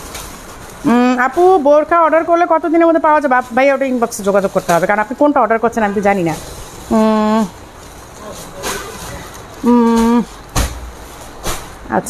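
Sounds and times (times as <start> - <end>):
woman's held vowel sounds: 0.8 - 1.6, 6.9 - 7.6, 9.6 - 10.4.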